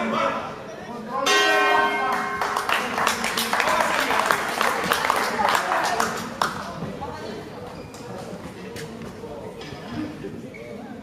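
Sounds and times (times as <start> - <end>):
boxing ring bell: 1.3 - 2.7.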